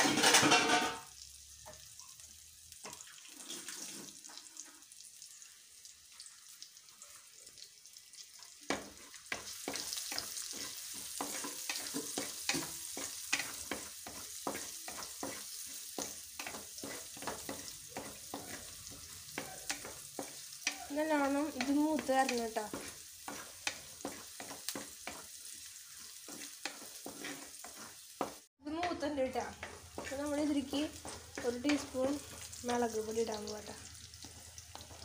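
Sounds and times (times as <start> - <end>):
vegetables sizzling in hot oil: 0.0 - 35.0
spoon scraping and tapping pot: 8.7 - 25.3, 26.2 - 30.3.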